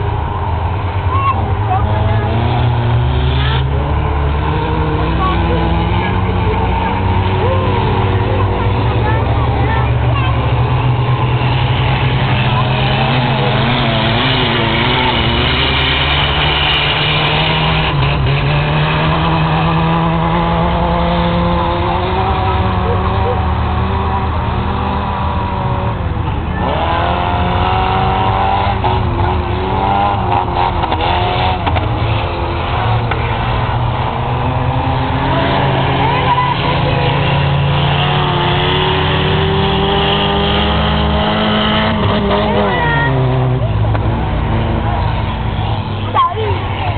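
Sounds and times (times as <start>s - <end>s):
race car engines revving: 0.0s - 46.9s.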